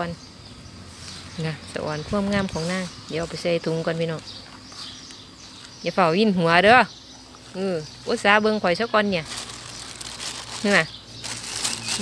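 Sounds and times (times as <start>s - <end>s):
plastic bag crinkling: 9.0s - 12.0s.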